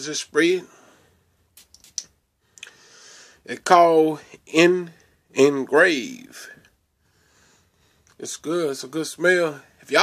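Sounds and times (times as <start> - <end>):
atomizer spray hiss: 1.6 - 2.1.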